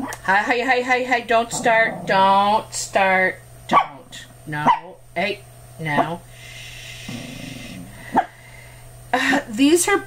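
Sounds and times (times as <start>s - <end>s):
dog grumbling: 1.4s - 2.6s, 6.9s - 8.4s
dog barking: 3.7s - 4.0s, 4.6s - 4.9s, 8.1s - 8.3s.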